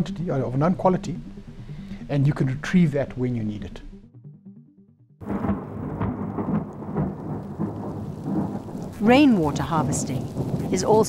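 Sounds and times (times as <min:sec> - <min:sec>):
faint soft music: 0:00.0 - 0:04.2
heavy rain onto water: 0:05.2 - 0:11.0.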